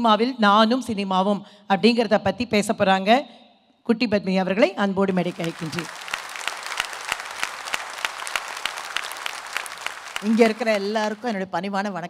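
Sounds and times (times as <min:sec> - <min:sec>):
audience applauding: 0:05.2 - 0:11.4
amplified speech: 0:10.2 - 0:12.0.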